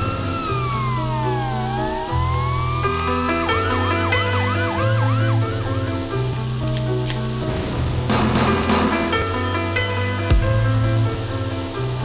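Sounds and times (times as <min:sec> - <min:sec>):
siren sound effect: 0:00.0 - 0:06.4.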